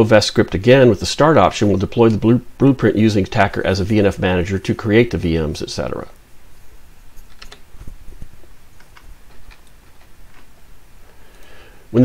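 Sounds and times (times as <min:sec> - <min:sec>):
faint hiss: 0:00.0 - 0:12.0
computer keys clicking: 0:07.2 - 0:07.9, 0:08.8 - 0:10.5.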